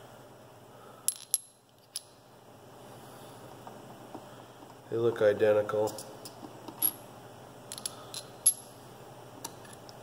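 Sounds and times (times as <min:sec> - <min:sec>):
metal washers clinking: 0:07.7 - 0:08.7.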